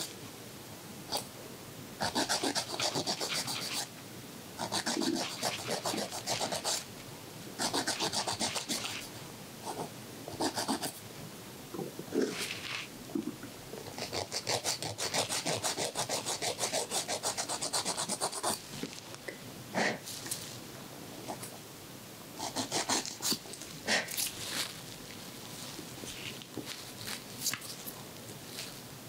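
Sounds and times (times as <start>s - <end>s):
nail file rasping on fingernails: 2.0s - 3.9s, 4.6s - 6.8s, 7.6s - 9.1s, 9.7s - 11.0s, 13.9s - 18.6s, 22.4s - 23.4s.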